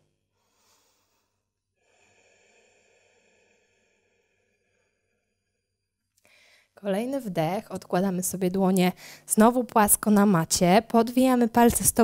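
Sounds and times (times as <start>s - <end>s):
faint slow breath out: 0.4s - 6.7s.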